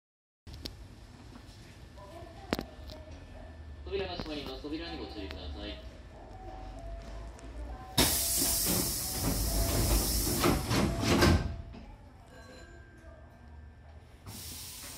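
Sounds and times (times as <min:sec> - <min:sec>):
compressed air hiss: 0:08.0 - 0:10.6, 0:14.3 - 0:14.9.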